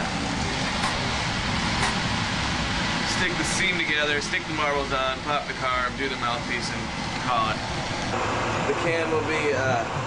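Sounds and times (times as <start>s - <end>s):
torch burning with rushing noise: 0.0s - 10.0s.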